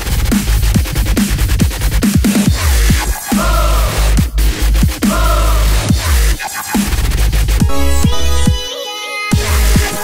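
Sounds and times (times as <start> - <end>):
dubstep music with heavy bass: 0.0 - 10.0.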